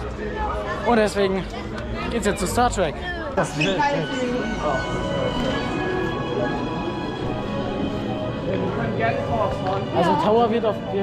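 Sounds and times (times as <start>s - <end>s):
voices of people queuing: 0.0s - 11.0s
background music with long held notes: 3.8s - 11.0s.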